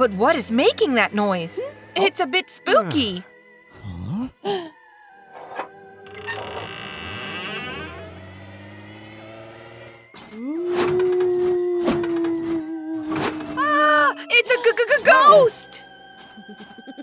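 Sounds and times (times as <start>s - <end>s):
ghostly wail: 10.0s - 17.0s.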